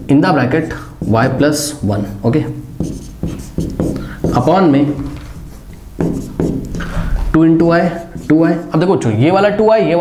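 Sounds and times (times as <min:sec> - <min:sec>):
marker pen writing on whiteboard: 0:00.0 - 0:09.1.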